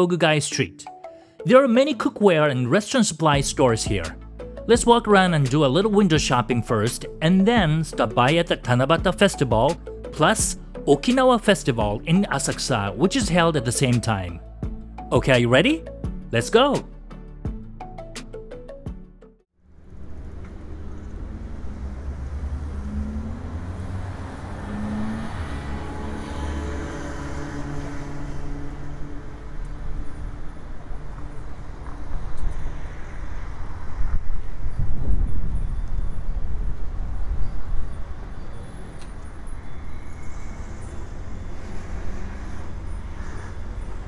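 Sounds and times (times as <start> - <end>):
street traffic rumble: 19.6 - 44.0.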